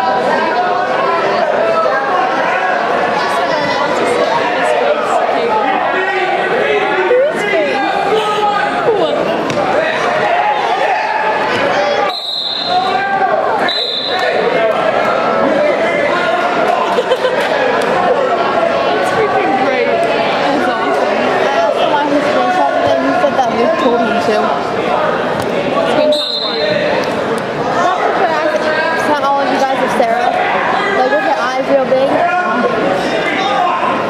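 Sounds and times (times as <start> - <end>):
crowd chatter in a large gym: 0.0 - 34.0
referee's whistle blasts: 12.0 - 13.0, 13.6 - 14.3, 26.0 - 26.8.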